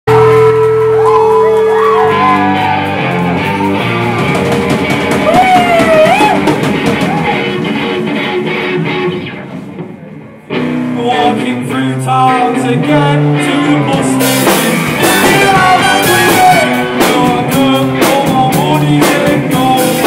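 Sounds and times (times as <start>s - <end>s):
bass guitar: 0.1s - 20.0s
drum kit: 0.1s - 20.0s
electric guitars: 0.1s - 20.0s.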